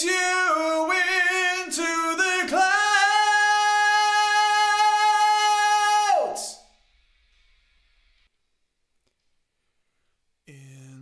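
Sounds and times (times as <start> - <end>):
man singing unaccompanied: 0.0 - 6.6.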